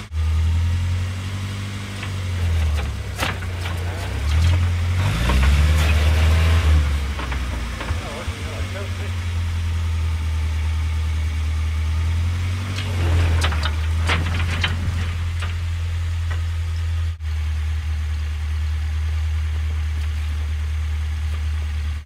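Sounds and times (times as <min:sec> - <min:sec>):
truck engine humming: 0:00.0 - 0:22.0.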